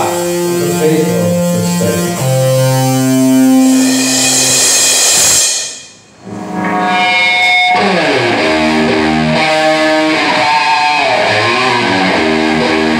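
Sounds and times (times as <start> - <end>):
rock band playing: 0.0 - 12.9.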